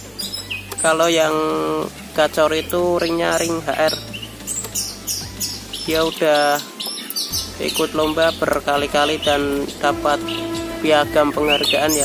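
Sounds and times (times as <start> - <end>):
songbird chirping: 0.0 - 12.0.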